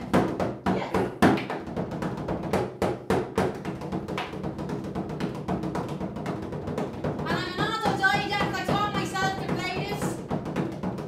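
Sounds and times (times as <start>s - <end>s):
frame drum beating: 0.0s - 11.0s.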